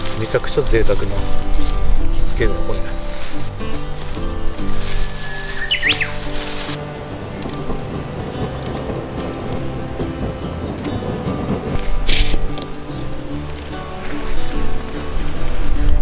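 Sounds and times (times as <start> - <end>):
background music: 0.0 - 16.0
wood fire crackling: 0.0 - 16.0.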